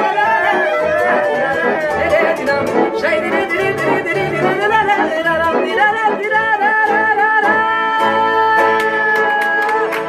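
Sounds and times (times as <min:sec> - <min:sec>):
accordion: 0:00.0 - 0:10.0
violin: 0:00.0 - 0:10.0
woman singing with vibrato: 0:00.1 - 0:09.9.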